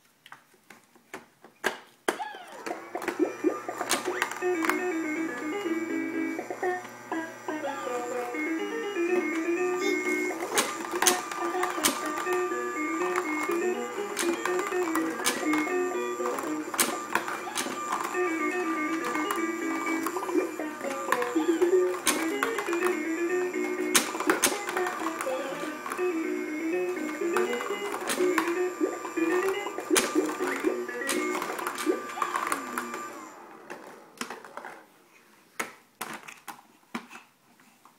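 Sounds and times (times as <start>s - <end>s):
electronic toy tune: 2.2s - 33.3s
plastic balls clattering: 10.0s - 26.1s.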